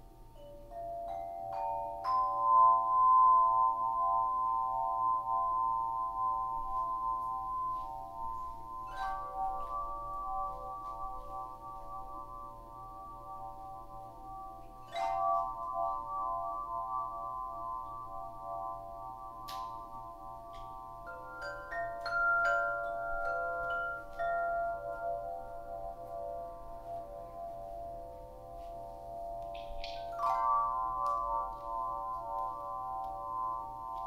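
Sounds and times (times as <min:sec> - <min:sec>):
bell-like tones ringing: 0:00.0 - 0:34.0.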